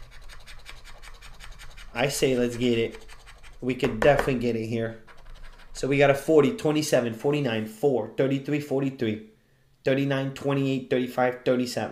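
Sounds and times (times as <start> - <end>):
lottery ticket being scratched: 0.0 - 3.8, 4.9 - 6.1.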